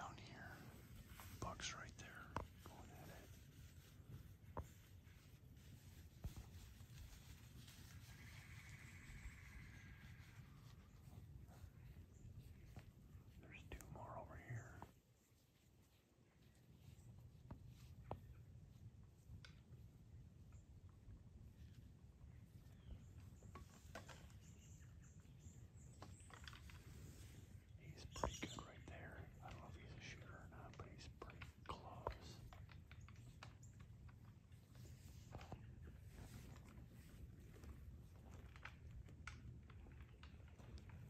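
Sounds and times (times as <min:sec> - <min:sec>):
person whispering faintly: 0:00.0 - 0:04.8, 0:10.6 - 0:15.4, 0:27.2 - 0:32.8
rustles: 0:00.0 - 0:41.0.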